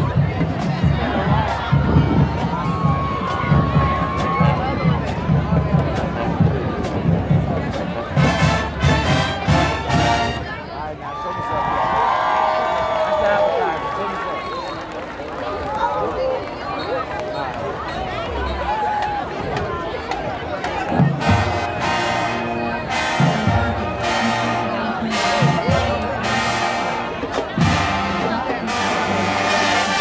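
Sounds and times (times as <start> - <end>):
marching band playing: 0.0 - 10.8, 19.1 - 30.0
crowd voices and shouting: 0.0 - 30.0.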